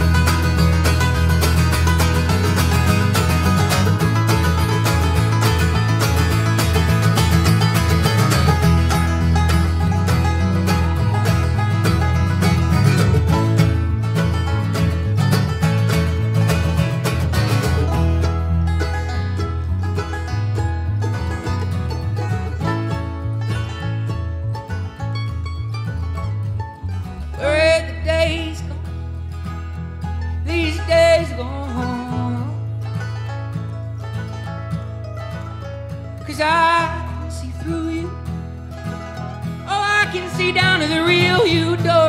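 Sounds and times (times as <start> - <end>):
bluegrass band playing: 0.0 - 42.0
person singing: 30.5 - 32.6, 36.3 - 38.2, 39.6 - 42.0.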